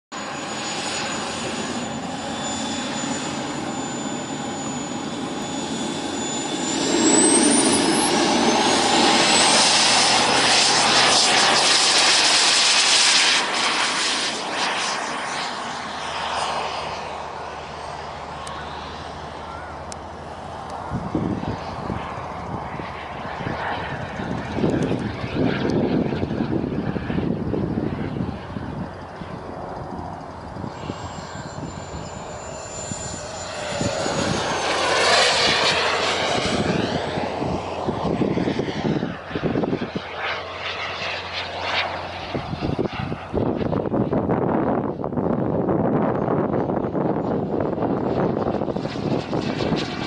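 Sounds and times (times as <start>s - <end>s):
jet aircraft passing: 0.1s - 50.0s
high falling whistle of jet: 0.2s - 18.0s, 26.2s - 43.2s.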